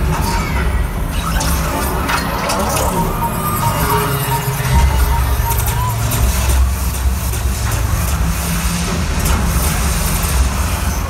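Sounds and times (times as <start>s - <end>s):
crowd noise: 0.0s - 11.0s
deep bass rumble: 2.9s - 11.0s.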